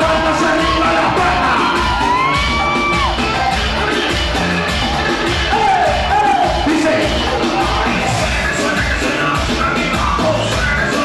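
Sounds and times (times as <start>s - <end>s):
vocalist on microphone: 0.0s - 2.8s, 5.3s - 11.0s
crowd cheering: 0.0s - 9.3s
loud club music with beat: 0.0s - 11.0s.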